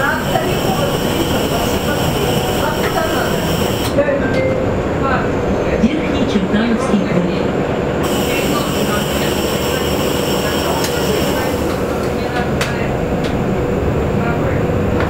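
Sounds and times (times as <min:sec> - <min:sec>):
road rumble: 0:00.0 - 0:15.0.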